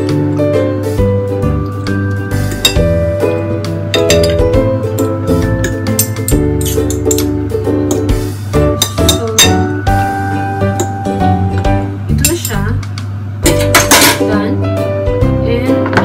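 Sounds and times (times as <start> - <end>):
cutlery clinking on ceramic bowl: 4.0 - 4.4, 8.8 - 9.7, 13.5 - 14.3.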